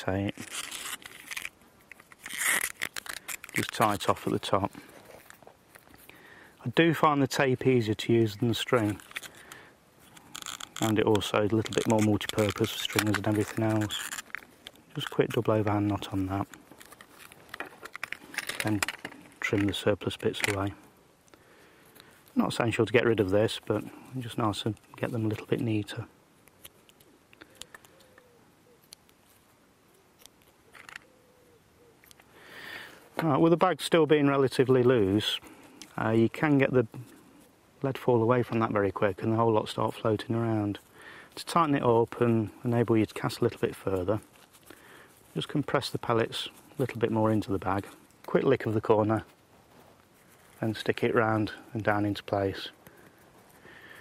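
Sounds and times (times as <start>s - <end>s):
plastic bag crinkling: 0.0s - 6.2s, 8.4s - 20.7s.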